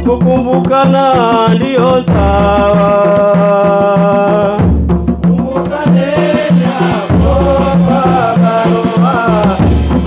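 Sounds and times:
man singing a chant: 0.0 - 4.7, 5.3 - 9.8
repeating drum beat: 0.0 - 10.0.

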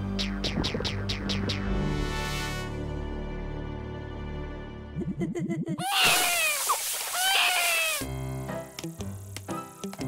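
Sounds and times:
cartoon voices screaming: 5.8 - 8.1
spraying water hiss: 6.0 - 9.9.

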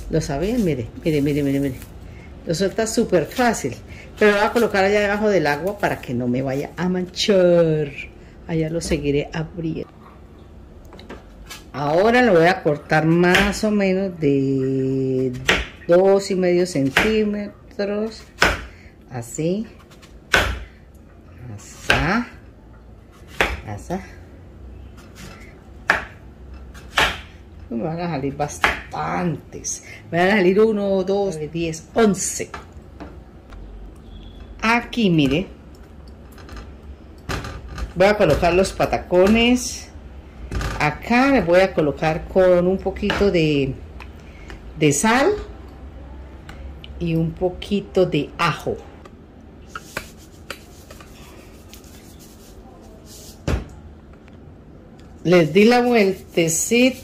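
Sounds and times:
knife chopping onto wooden board: 18.4 - 18.7, 20.3 - 20.7, 23.3 - 23.6, 25.9 - 27.3.

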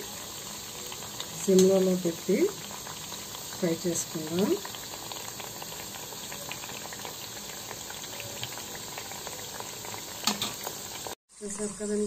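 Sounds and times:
dough deep-frying in hot oil: 0.0 - 12.0.

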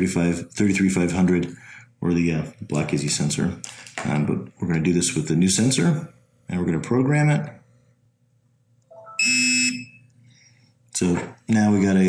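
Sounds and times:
loud harsh buzzer beep: 9.0 - 10.0.

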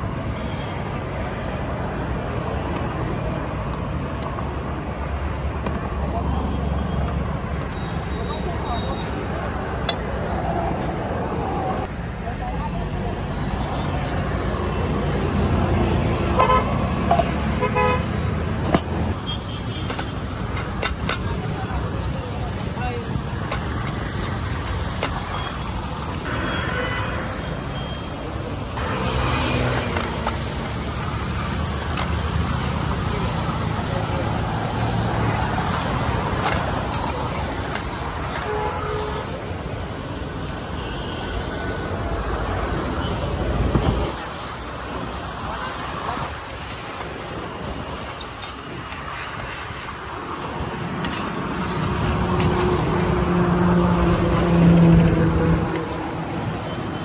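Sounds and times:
traffic rumble: 0.0 - 57.0
people talking: 7.8 - 10.8, 11.4 - 15.1, 20.8 - 25.7, 32.0 - 38.5, 43.7 - 48.0
vehicle horns tooting: 16.3 - 16.8, 17.5 - 18.1, 26.3 - 28.1, 38.3 - 39.4.

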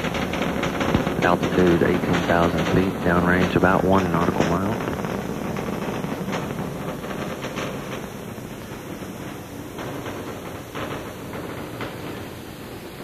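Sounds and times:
rocket engines rumbling: 0.0 - 13.0.

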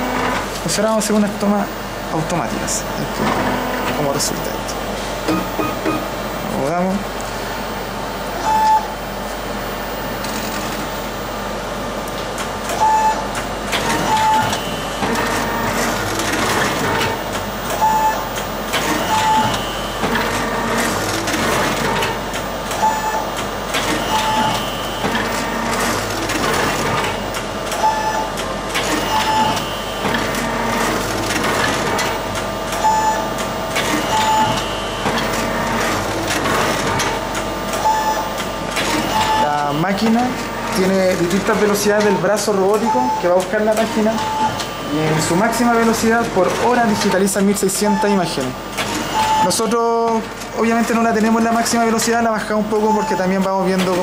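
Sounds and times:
short beeps: 5.3 - 6.1.

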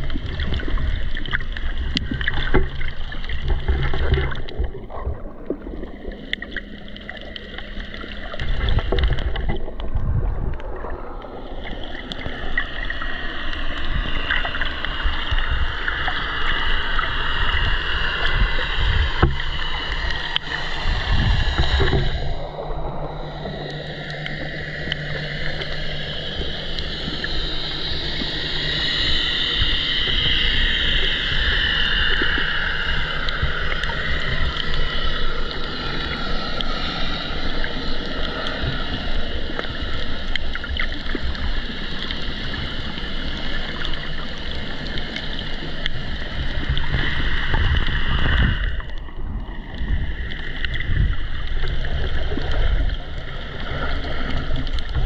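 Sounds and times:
low rumble: 0.0 - 55.0
underwater water wash: 0.0 - 55.0.

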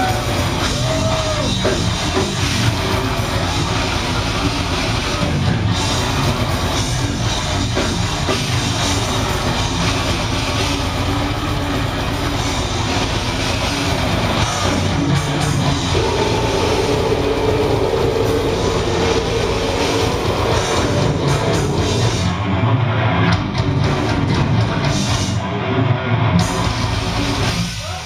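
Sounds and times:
metal band playing live: 0.0 - 28.0.

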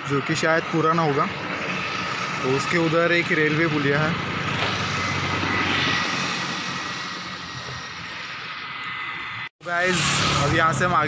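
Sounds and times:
motor vehicle passing: 1.5 - 11.0.

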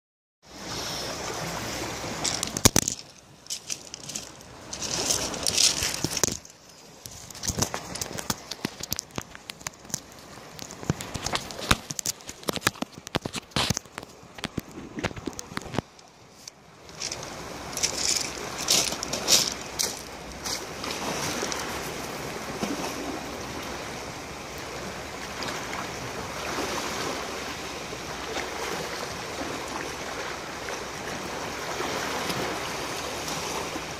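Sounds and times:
small waves on pebble shore: 0.5 - 33.9
water splashing around legs: 1.4 - 16.0.

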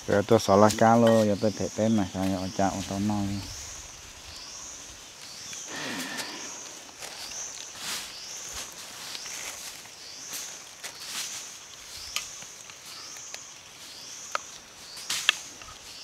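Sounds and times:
high-pitched animal call: 5.7 - 6.9.

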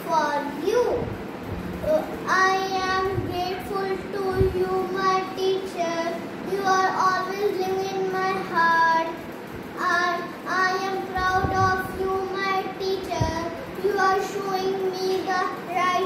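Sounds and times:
boy singing unaccompanied: 1.8 - 9.2, 9.8 - 16.0.

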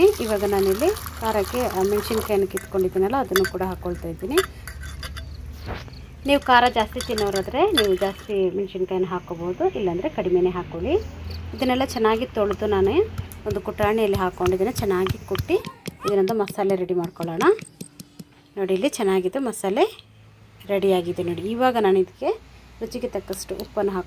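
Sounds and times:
water poured into bowl: 0.0 - 3.0
light clinks against steel: 2.5 - 8.3.

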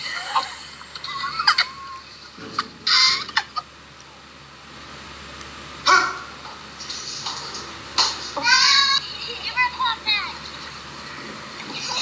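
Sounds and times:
emu squawking call: 5.8 - 6.3.

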